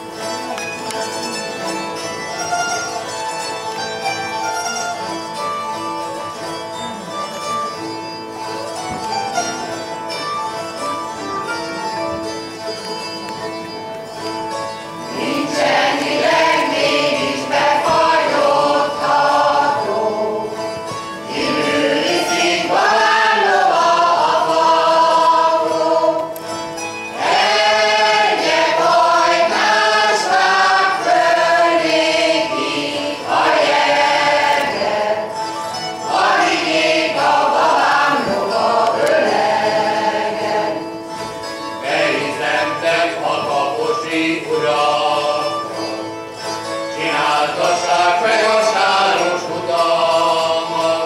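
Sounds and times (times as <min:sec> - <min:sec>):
zither accompaniment: 0:00.0 - 0:51.0
choir singing folk song: 0:14.1 - 0:51.0.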